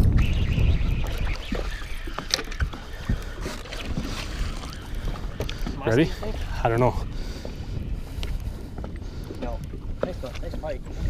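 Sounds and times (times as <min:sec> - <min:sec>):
choppy water around boat: 0:00.0 - 0:11.0
wind rumble: 0:00.0 - 0:11.0.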